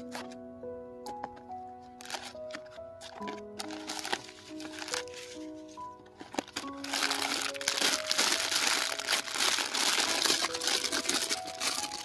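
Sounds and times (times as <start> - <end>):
background music with held notes: 0.0 - 12.0
plastic bag crinkling: 2.0 - 12.0.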